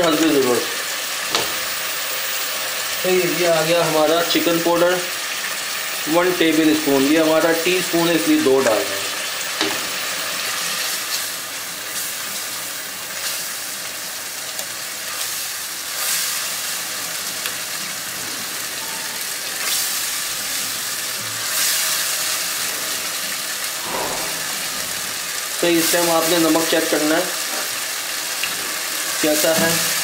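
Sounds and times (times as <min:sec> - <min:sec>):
sauce sizzling in hot oil: 0:00.0 - 0:30.0.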